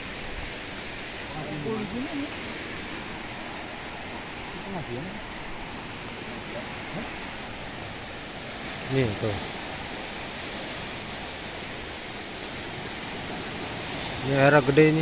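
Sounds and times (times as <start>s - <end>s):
floodwater rushing: 0.0s - 15.0s.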